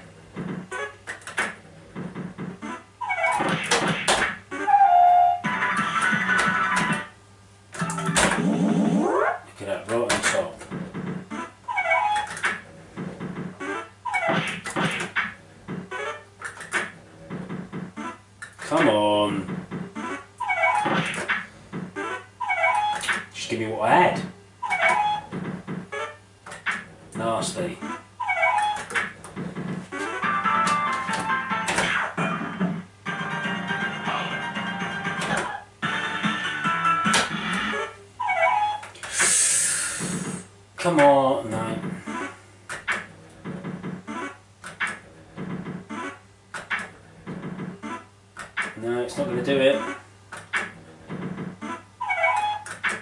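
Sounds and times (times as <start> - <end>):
slot machine electronic music: 4.6 - 7.1, 7.8 - 9.4, 30.0 - 38.8.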